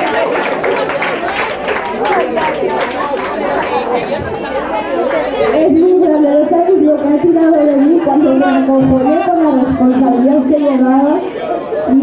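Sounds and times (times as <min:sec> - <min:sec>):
people chattering: 0:00.0 - 0:12.0
woman speaking into a microphone: 0:05.4 - 0:12.0.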